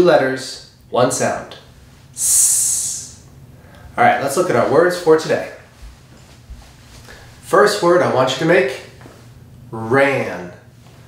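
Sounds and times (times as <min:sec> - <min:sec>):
man making hissing sound: 0:02.2 - 0:03.2.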